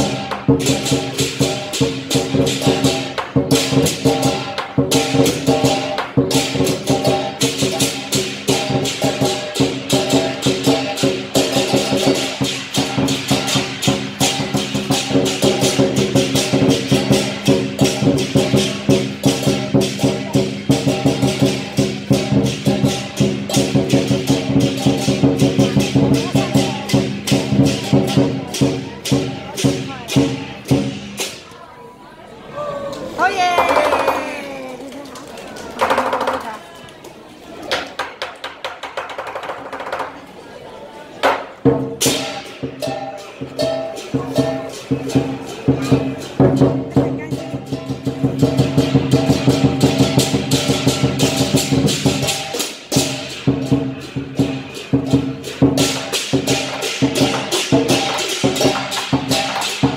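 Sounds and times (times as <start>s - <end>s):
cymbals crashing: 0.0s - 31.4s, 41.8s - 59.9s
drum beating: 0.0s - 31.4s, 33.2s - 34.9s, 35.6s - 36.7s, 41.2s - 59.9s.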